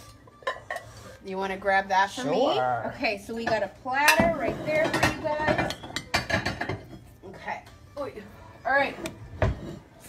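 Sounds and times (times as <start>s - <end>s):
dishes and utensils clinking: 0.0s - 1.6s, 2.5s - 7.7s, 9.0s - 10.0s.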